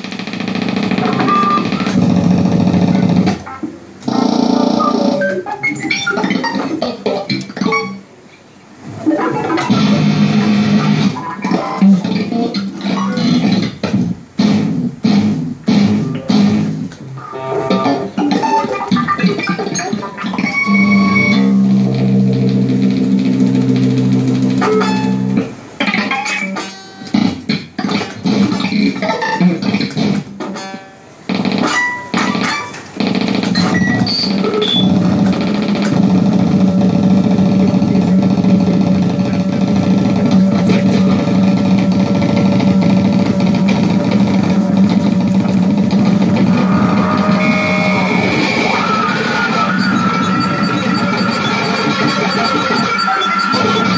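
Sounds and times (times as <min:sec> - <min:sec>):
experimental electric guitar music: 0:00.0 - 0:08.1, 0:09.0 - 0:53.9.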